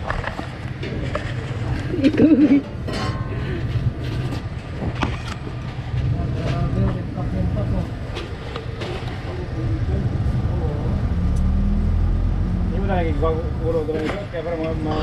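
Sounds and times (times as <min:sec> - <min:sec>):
vehicle engines rumbling: 0:00.0 - 0:15.0
people talking: 0:06.0 - 0:11.3, 0:12.7 - 0:15.0.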